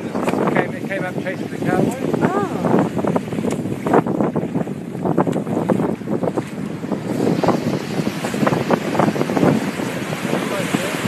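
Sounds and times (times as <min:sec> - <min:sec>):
surf washing onto beach: 0:00.0 - 0:11.0
wind buffeting microphone: 0:00.0 - 0:11.0.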